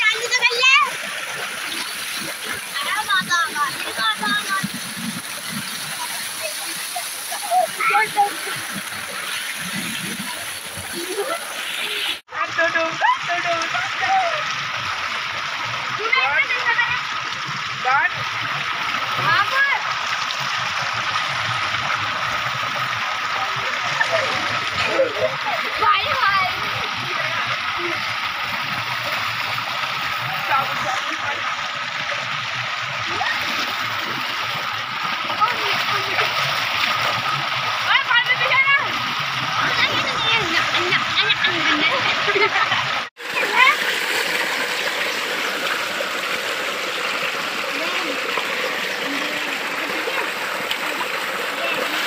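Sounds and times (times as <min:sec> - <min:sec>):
people splashing in water: 0:00.0 - 0:52.0
water gushing from pipe: 0:00.0 - 0:52.0.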